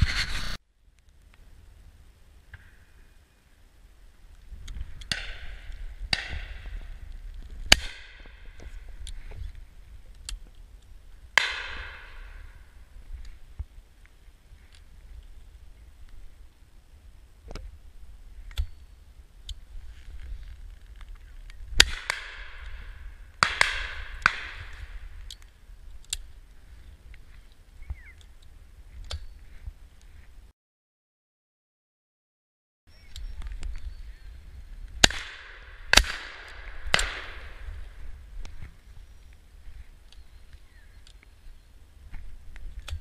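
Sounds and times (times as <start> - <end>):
wind rumble on microphone: 0.0 - 3.1, 4.1 - 30.5, 32.9 - 43.0
shotgun shots: 7.7 - 8.3, 21.8 - 22.7, 23.4 - 24.9, 35.0 - 37.7.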